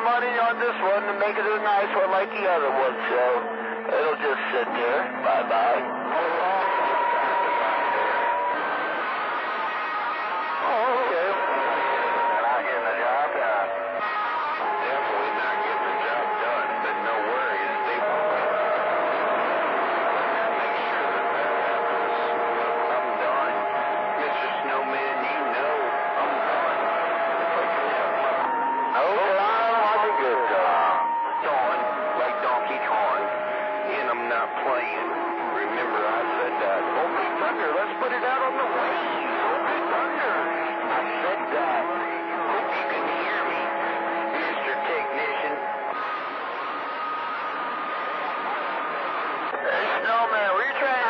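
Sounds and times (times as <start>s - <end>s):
faint garbled radio voices: 0.0s - 51.0s.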